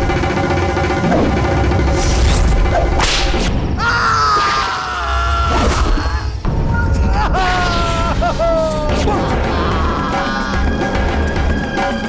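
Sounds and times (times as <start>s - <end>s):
man's pained cry: 3.8s - 10.8s.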